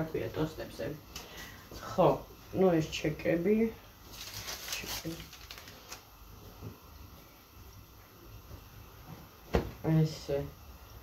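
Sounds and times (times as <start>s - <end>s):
bag rustling: 4.1s - 6.0s.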